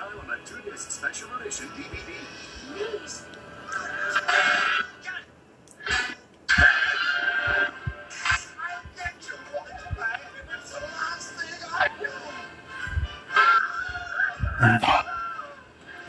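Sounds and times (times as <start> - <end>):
trailer music through tv speaker: 0.0 - 16.0
voices: 13.4 - 15.7.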